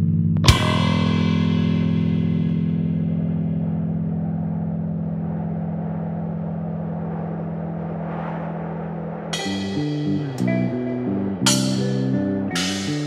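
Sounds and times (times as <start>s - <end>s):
sustained low drone: 0.0s - 13.0s
hissing wash: 3.2s - 13.0s
higher chord notes ringing: 9.4s - 13.0s.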